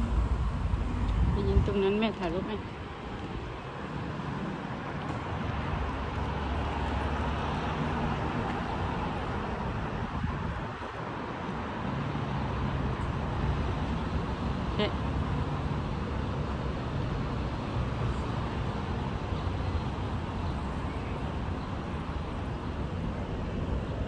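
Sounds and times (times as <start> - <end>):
city road traffic: 0.0 - 24.0.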